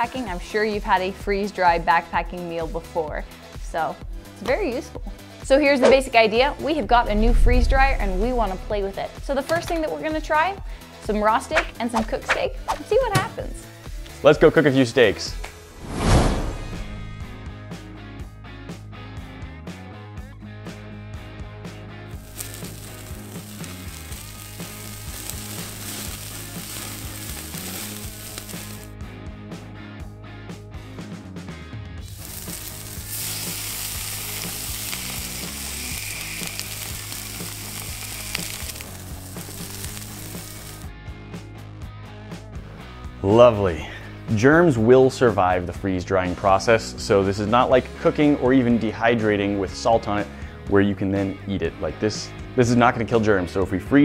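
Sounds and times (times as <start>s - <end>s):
background music: 0.0s - 54.0s
steaks sizzling on a grill: 22.2s - 28.9s, 32.0s - 40.9s.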